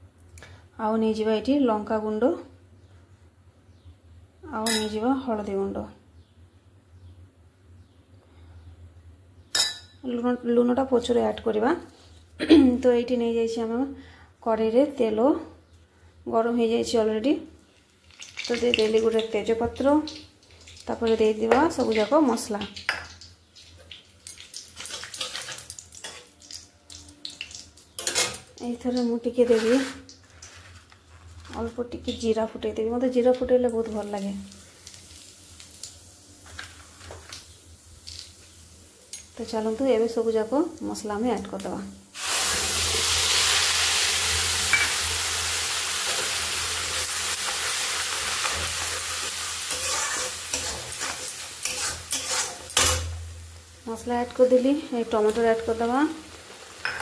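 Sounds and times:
leaves sizzling in hot oil: 0:17.6 - 0:32.4, 0:33.2 - 0:57.0
crackles and pops: 0:17.7 - 0:21.2
metal spatula scraping: 0:24.3 - 0:26.3, 0:27.9 - 0:28.5, 0:29.4 - 0:31.5, 0:48.4 - 0:53.2.

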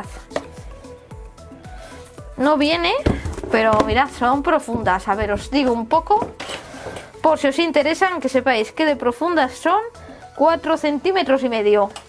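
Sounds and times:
plastic boxes knocking and rubbing: 0:03.0 - 0:06.6.

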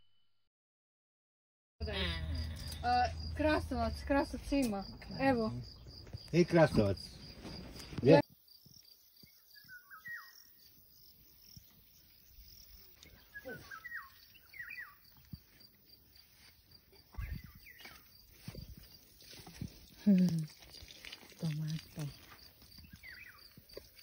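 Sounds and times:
insect trilling: 0:01.8 - 0:24.0
bird chirps: 0:07.0 - 0:19.1, 0:22.7 - 0:23.9.

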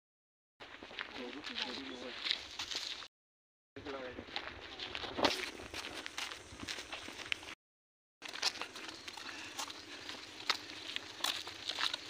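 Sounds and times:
footsteps on dry grass: 0:00.6 - 0:03.1, 0:03.8 - 0:07.6, 0:08.2 - 0:12.0.

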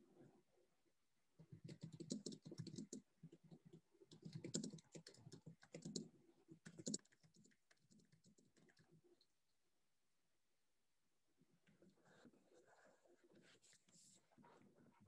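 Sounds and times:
faint keyboard typing: 0:01.4 - 0:09.3.

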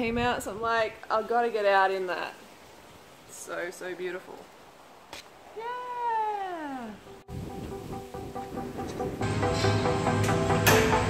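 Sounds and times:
background music with held notes: 0:07.0 - 0:11.0.

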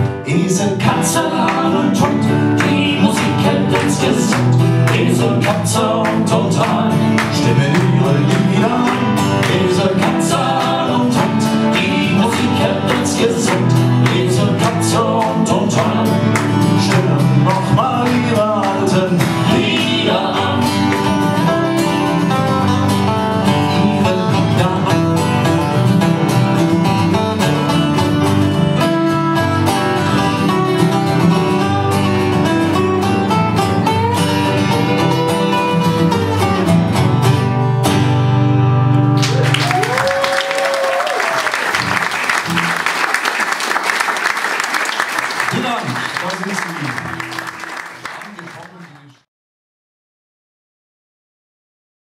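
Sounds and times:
acoustic guitars playing folk: 0:00.0 - 0:48.9.

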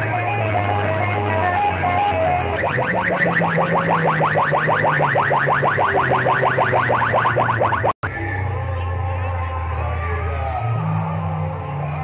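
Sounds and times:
loud electronic music: 0:00.0 - 0:08.2
rapid rising chirps: 0:02.4 - 0:08.0.

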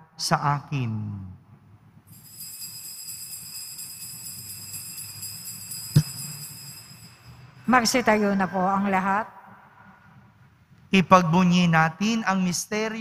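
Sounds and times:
altar bells ringing: 0:02.1 - 0:08.3.

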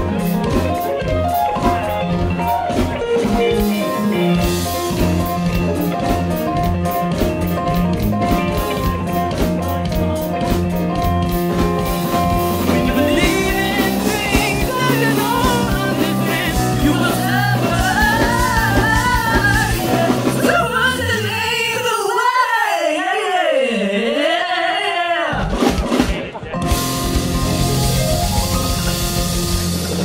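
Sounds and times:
drum kit steady beat: 0:00.0 - 0:21.0, 0:25.4 - 0:30.0
electric guitar: 0:00.0 - 0:21.9, 0:25.4 - 0:30.0
keyboard: 0:00.0 - 0:21.9, 0:25.6 - 0:30.0
person singing: 0:10.2 - 0:29.4.

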